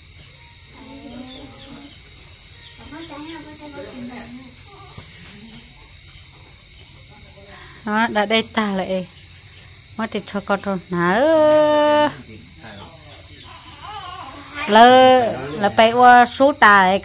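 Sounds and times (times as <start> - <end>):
chorus of insects: 0.0 - 17.0
faint voices talking: 11.0 - 17.0.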